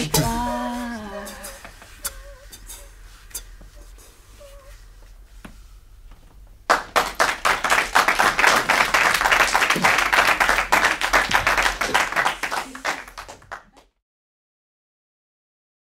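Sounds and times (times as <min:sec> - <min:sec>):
small audience applause: 0:06.7 - 0:14.0.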